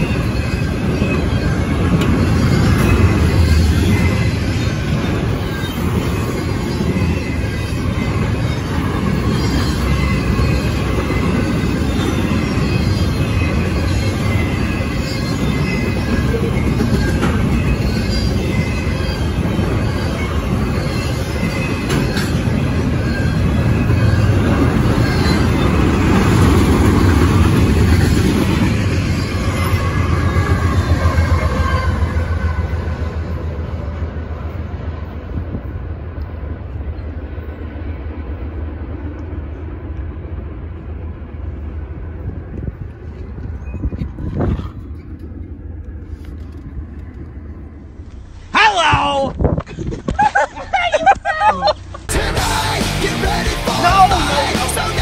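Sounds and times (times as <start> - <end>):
freight train wheels rumbling: 0.0 - 55.0.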